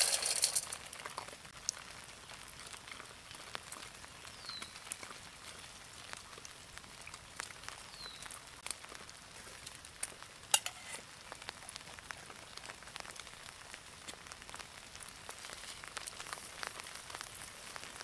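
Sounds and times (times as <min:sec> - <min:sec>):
campfire crackling and popping: 0:00.0 - 0:18.0
light rain hiss: 0:00.0 - 0:18.0.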